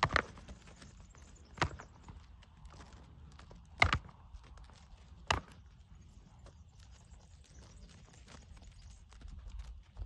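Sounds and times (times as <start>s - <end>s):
goat hooves on stony ground: 0.0s - 10.0s.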